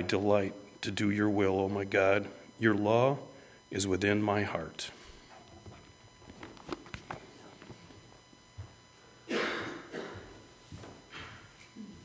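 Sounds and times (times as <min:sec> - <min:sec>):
faint footsteps: 0:04.9 - 0:09.0, 0:09.6 - 0:12.0.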